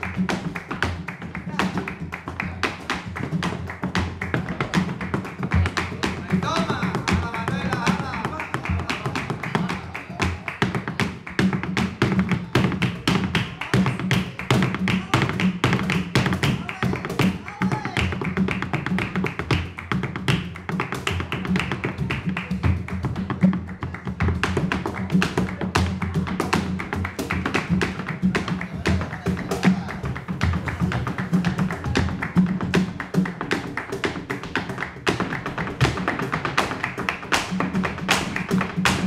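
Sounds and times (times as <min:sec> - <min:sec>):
flamenco guitar: 0:00.0 - 0:39.0
hand-clapping: 0:00.0 - 0:39.0
heeled shoes tapping on wood: 0:00.0 - 0:39.0.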